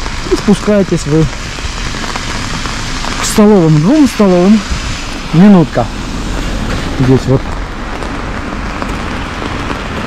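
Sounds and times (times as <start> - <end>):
cars on a wet street: 0.0 - 10.0
rain on an umbrella: 0.0 - 10.0.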